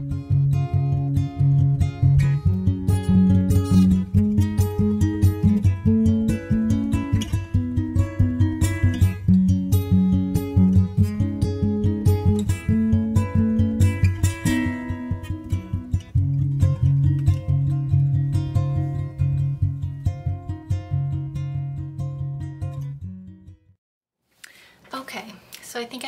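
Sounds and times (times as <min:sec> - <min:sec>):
acoustic guitar plucking: 0:00.0 - 0:23.8.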